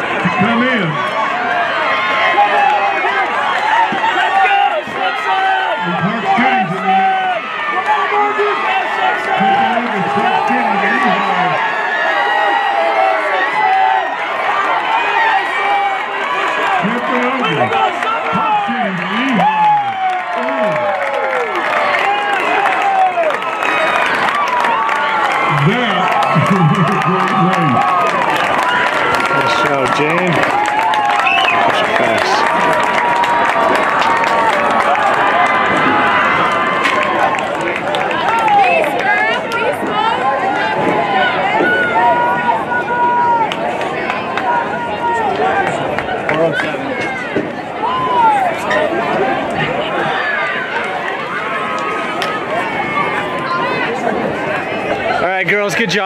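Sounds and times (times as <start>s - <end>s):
stadium crowd cheering and clapping: 0.0s - 56.0s.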